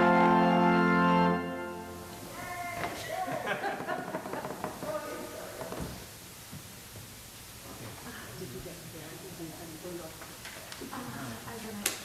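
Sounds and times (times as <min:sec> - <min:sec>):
organ tones: 0:00.0 - 0:02.3.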